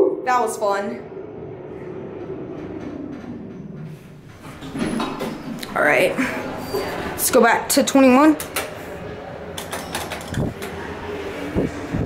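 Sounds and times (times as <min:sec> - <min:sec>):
elevator cab low hum: 0:00.0 - 0:12.0.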